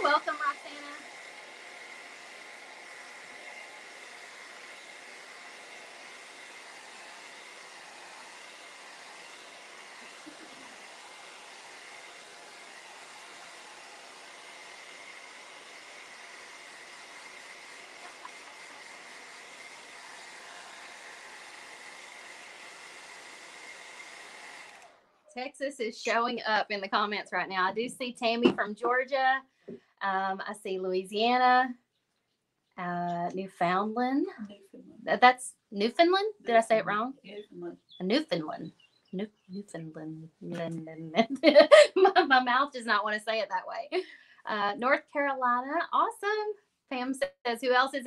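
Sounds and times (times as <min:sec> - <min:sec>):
hair dryer blowing: 0:00.0 - 0:25.0, 0:41.7 - 0:42.0.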